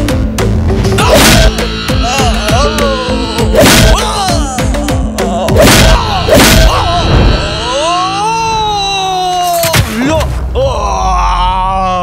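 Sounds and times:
man groaning in pain: 1.0s - 9.7s.

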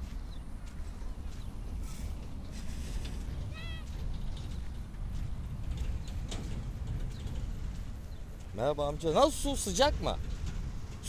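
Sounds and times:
footsteps on sand: 0.0s - 10.9s
low rumble: 0.0s - 11.0s.

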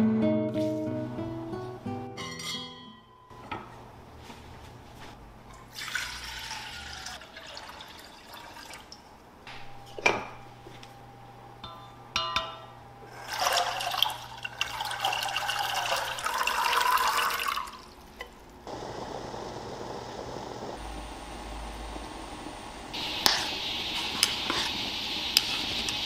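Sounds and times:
water boiling: 5.6s - 9.2s, 13.0s - 26.0s.

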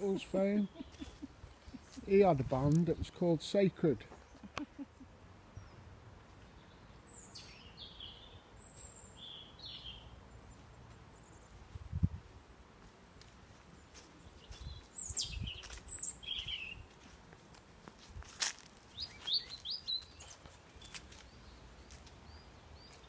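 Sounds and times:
high bird chirps: 14.4s - 16.8s, 19.0s - 21.0s.

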